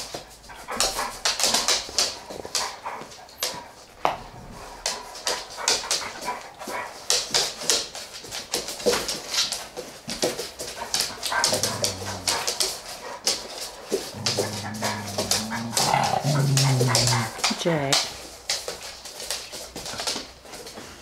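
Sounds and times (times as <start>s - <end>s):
dog claws clicking and scuffling: 0.0s - 4.2s, 4.8s - 21.0s
dog growling low: 4.0s - 7.0s, 11.1s - 13.2s, 13.8s - 17.6s.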